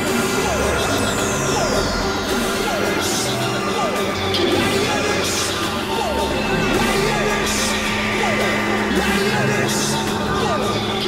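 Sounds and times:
dense low synth drones: 0.0s - 11.0s
high gliding whistle: 0.2s - 11.0s.

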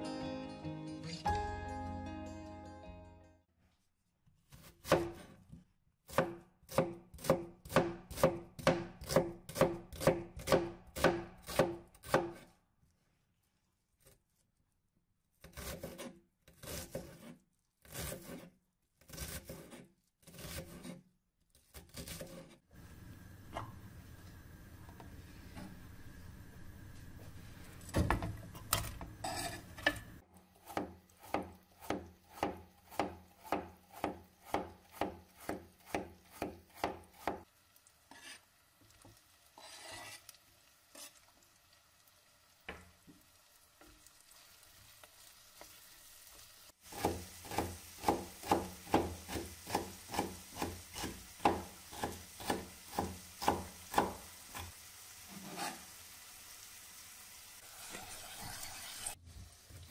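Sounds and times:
knife chopping on wooden board: 4.8s - 5.3s, 6.1s - 12.4s, 30.6s - 37.4s, 46.9s - 54.7s
wooden spoon scraping pot: 15.6s - 21.0s, 27.7s - 31.4s, 38.1s - 38.5s, 39.6s - 40.3s, 40.9s - 41.2s, 55.3s - 55.9s, 57.7s - 59.2s.

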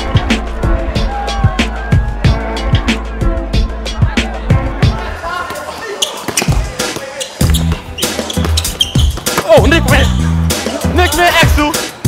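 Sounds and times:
music with heavy bass line: 0.0s - 5.1s, 7.4s - 11.8s.

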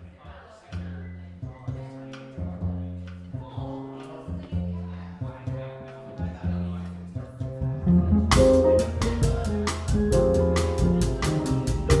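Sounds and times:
jazz combo playing: 7.4s - 12.0s.

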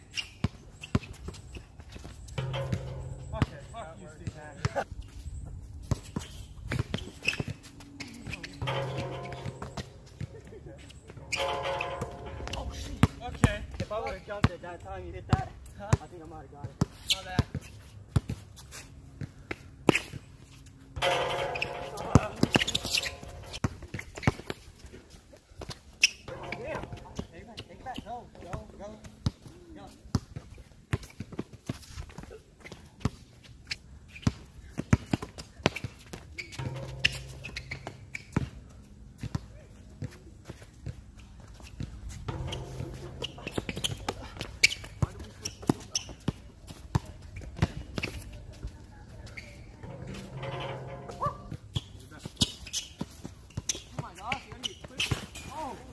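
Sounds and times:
basketball bouncing on court: 2.4s - 4.8s, 8.6s - 10.2s, 11.2s - 14.2s, 21.0s - 23.6s, 42.3s - 48.1s.

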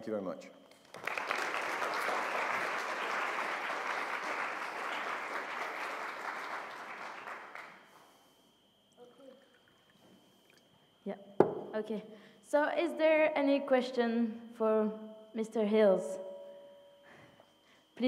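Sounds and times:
audience applauding: 0.8s - 7.9s.

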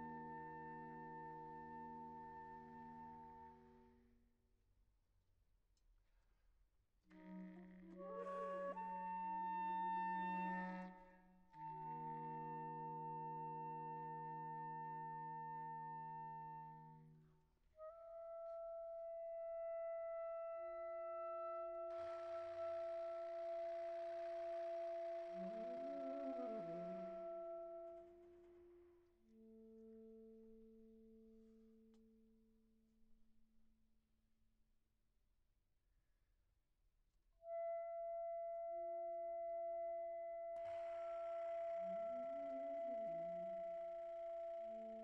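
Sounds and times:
saxophone quartet sustaining notes: 21.5s - 28.7s.

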